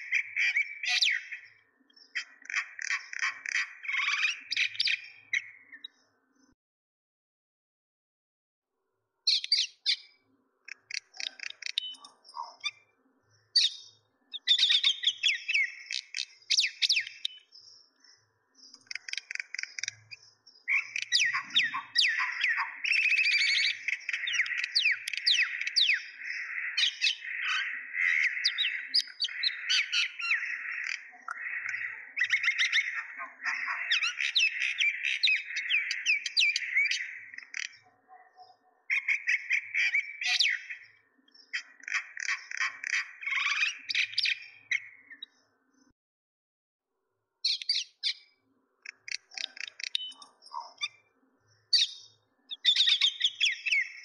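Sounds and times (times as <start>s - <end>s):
small birds chirping: 0.0s - 6.6s, 9.2s - 46.0s, 47.4s - 54.0s.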